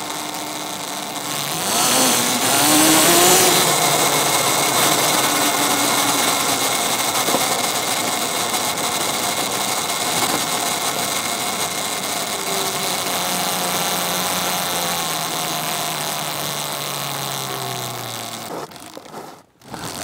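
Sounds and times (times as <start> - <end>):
electric motor whining: 0.0 - 20.0
tyre and road noise: 0.0 - 20.0.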